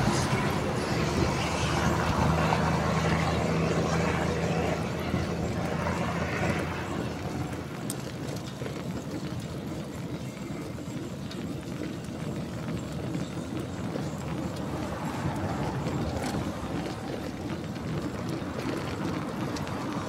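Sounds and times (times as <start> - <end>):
wind rushing over microphone: 0.0 - 8.9, 13.4 - 20.0
bike tyres rolling on asphalt: 0.0 - 20.0.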